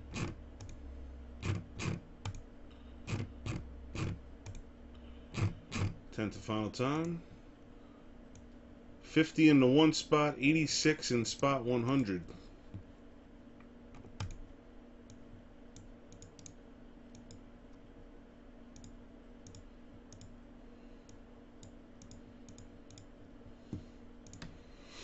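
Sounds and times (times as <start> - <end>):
faint steady hum: 0.0 - 25.0
computer mouse and keyboard clicks: 3.1 - 4.6, 24.2 - 24.6.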